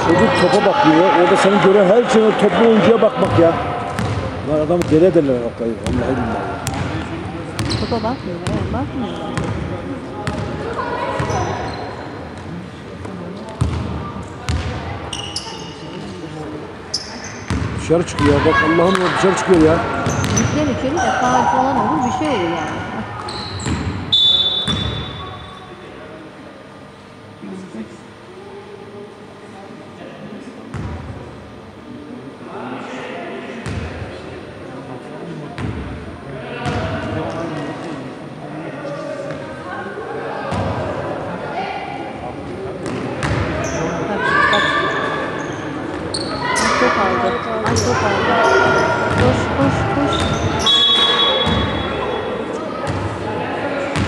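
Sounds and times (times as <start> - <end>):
voices in sports hall: 0.0 - 54.0.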